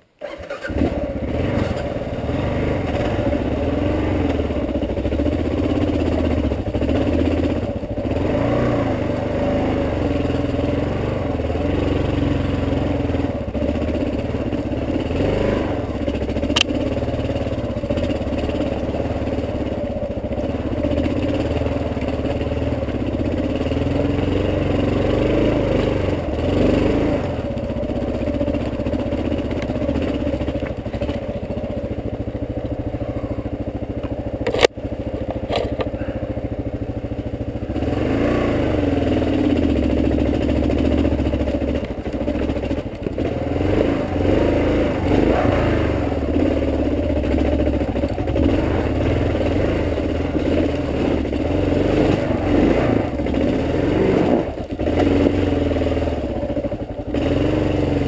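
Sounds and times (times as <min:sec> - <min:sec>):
motorcycle engine revving: 0:00.0 - 0:58.0
sharp click: 0:16.5 - 0:16.8.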